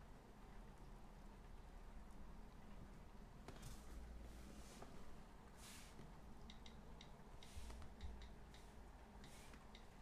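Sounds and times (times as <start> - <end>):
low room hum: 0.0 - 10.0
soft puffs of hiss: 3.5 - 6.3, 7.3 - 10.0.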